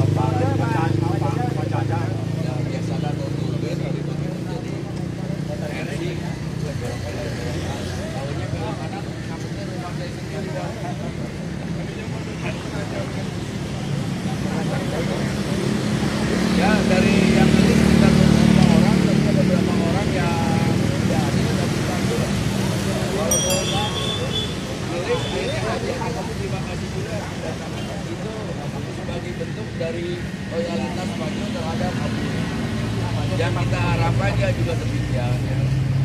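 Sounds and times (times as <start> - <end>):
group of people talking: 0.0 - 36.0
road traffic engine drone: 0.0 - 36.0.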